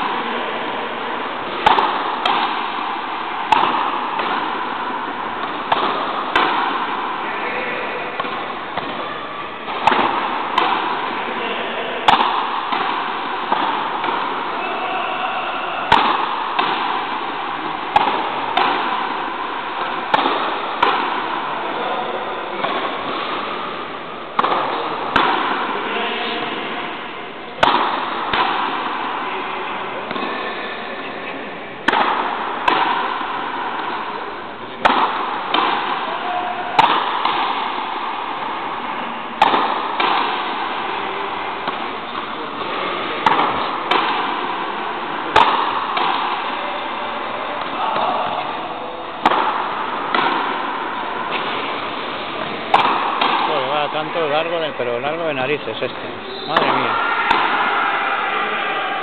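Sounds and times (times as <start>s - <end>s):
ball striking wall with echo: 0.0s - 59.0s
racket hitting rubber ball: 0.0s - 59.0s.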